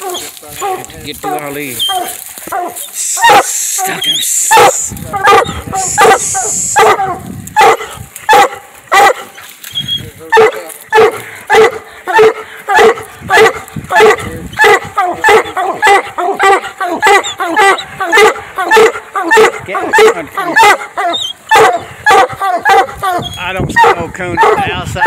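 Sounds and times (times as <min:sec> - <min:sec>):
hounds barking: 0:00.0 - 0:25.0.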